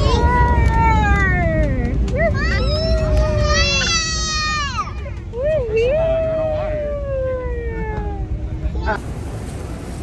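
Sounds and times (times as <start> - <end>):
airliner cabin hum: 0.0 - 10.0.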